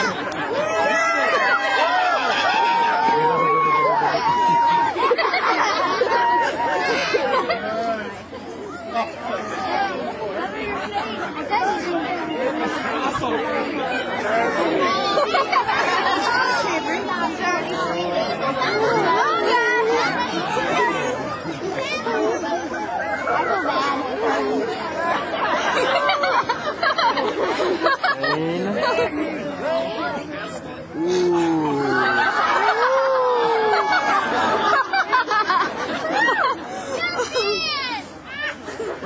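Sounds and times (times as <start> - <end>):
crowd chatter: 0.0 - 39.0.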